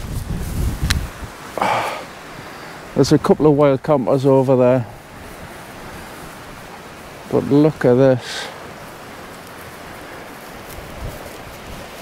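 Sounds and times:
steady outdoor rushing noise: 0.0 - 12.0.

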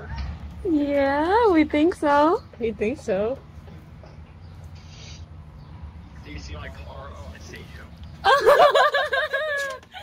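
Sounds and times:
quiet background rumble: 0.0 - 10.0
short breathy hiss: 4.8 - 5.3.

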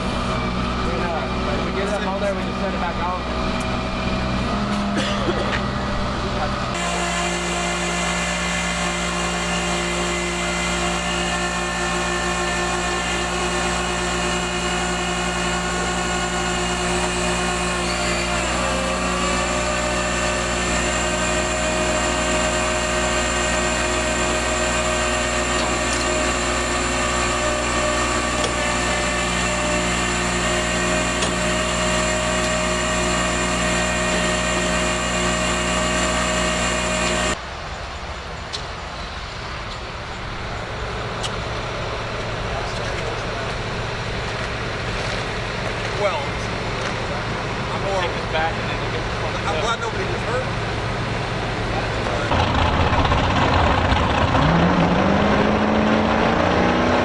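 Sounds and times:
winch whining: 5.6 - 37.4.

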